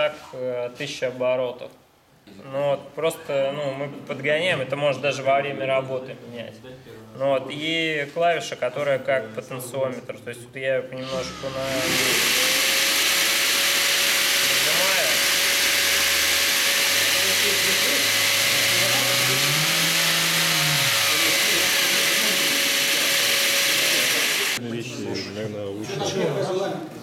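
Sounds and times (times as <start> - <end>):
orbital sander on wood: 11.3 - 24.6.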